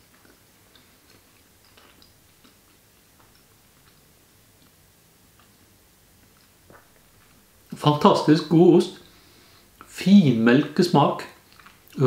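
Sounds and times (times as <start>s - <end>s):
person chewing: 0.0s - 7.8s, 11.4s - 12.0s.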